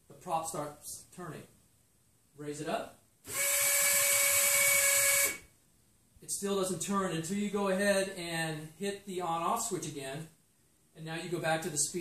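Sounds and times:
electric motor whine: 0:03.3 - 0:05.4.

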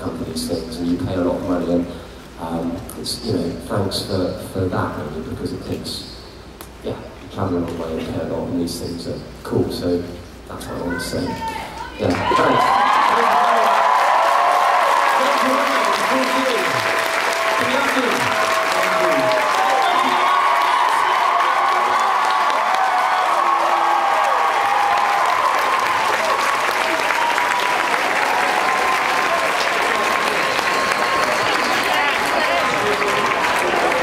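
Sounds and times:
whoops and shouts: 0:11.3 - 0:33.5
audience applauding: 0:12.0 - 0:34.0.

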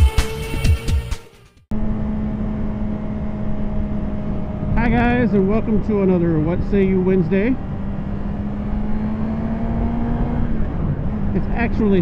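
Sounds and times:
motorcycle engine running: 0:01.7 - 0:12.0
wind noise: 0:03.3 - 0:12.0
person speaking: 0:11.4 - 0:12.0.

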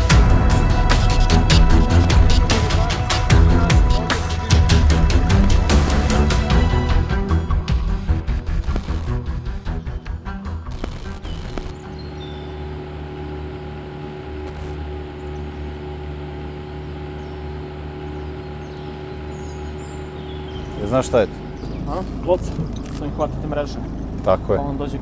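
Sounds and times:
outboard motor running: 0:00.0 - 0:09.6, 0:10.6 - 0:25.0.

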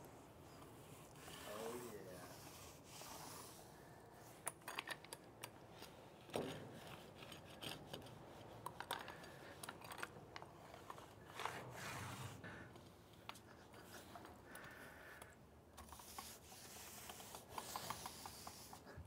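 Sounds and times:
paint roller rubbing on steel: 0:00.2 - 0:04.4, 0:15.8 - 0:19.0.

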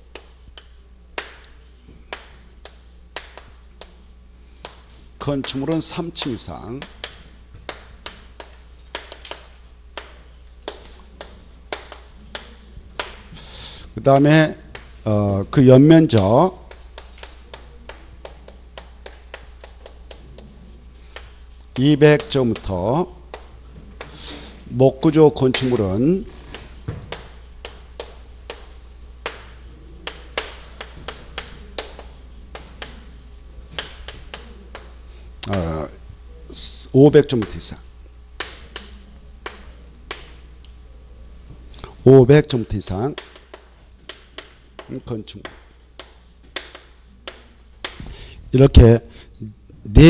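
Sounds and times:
steady low hum: 0:00.0 - 0:50.0
chalk tapping on chalkboard: 0:00.1 - 0:15.0, 0:16.0 - 0:35.7, 0:37.2 - 0:37.7, 0:38.4 - 0:40.5, 0:42.4 - 0:48.2.

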